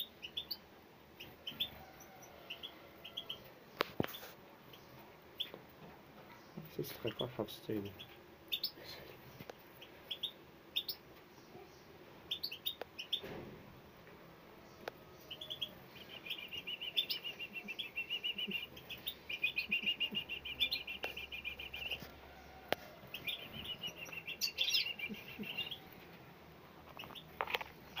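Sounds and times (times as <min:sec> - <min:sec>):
nestlings chirping: 0:00.0 - 0:13.4, 0:14.0 - 0:28.0.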